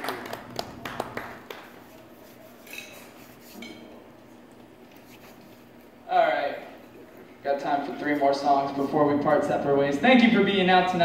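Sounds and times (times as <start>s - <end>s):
audience clapping: 0.0s - 2.2s
faint clink of dishes: 2.6s - 3.9s.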